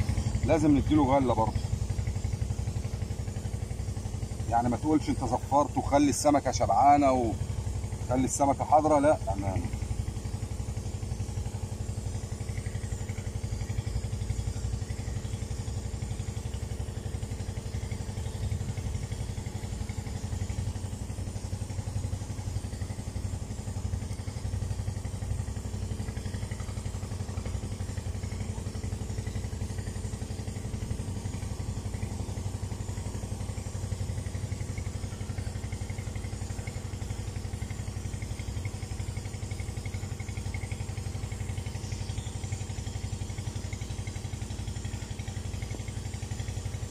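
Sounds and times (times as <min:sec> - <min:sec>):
engine idling: 0:00.0 - 0:46.9.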